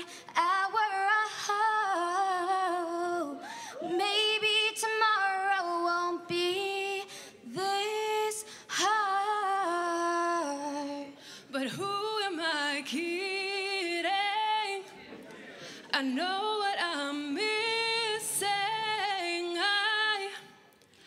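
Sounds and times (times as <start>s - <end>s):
girls singing through microphones: 0.0s - 15.0s, 15.9s - 20.6s.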